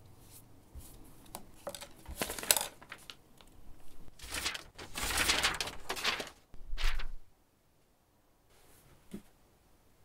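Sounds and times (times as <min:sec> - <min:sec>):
paper rustling and fluttering: 0:01.7 - 0:03.2, 0:04.1 - 0:07.3.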